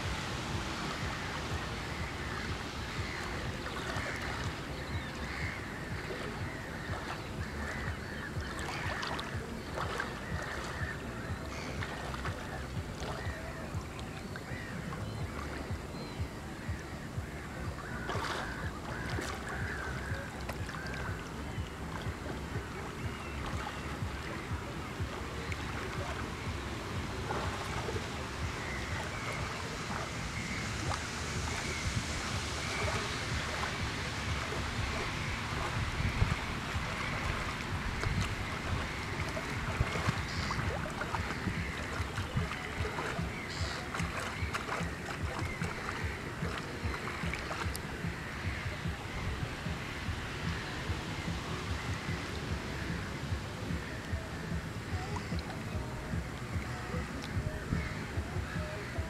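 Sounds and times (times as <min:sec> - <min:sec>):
waves lapping on rocks: 0:00.0 - 0:59.0
wind buffeting microphone: 0:00.0 - 0:59.0.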